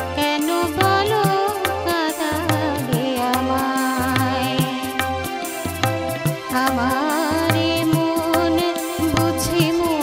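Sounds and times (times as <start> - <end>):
woman singing: 0.0 - 5.3, 6.4 - 10.0
instrumental accompaniment: 0.0 - 10.0
regular drum beat: 0.0 - 10.0.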